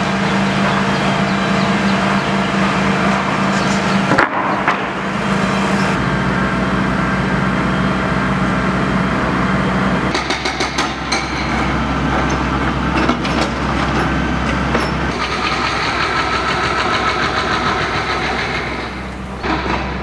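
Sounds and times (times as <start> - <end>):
construction machinery engine running: 0.0 - 20.0.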